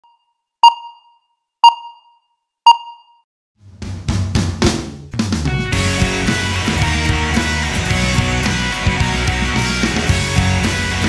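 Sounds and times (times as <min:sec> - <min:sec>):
short electronic pings: 0:00.0 - 0:03.3.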